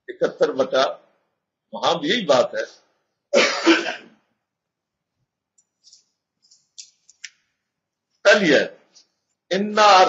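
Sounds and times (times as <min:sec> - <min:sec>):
man clearing throat: 0:03.4 - 0:04.2.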